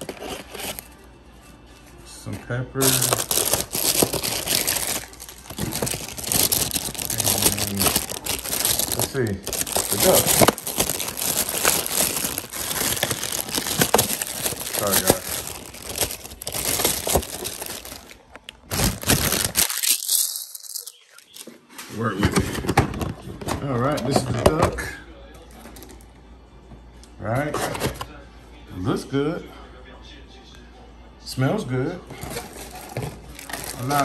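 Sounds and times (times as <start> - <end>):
plastic bag crinkling: 2.8 - 21.4, 32.2 - 34.0.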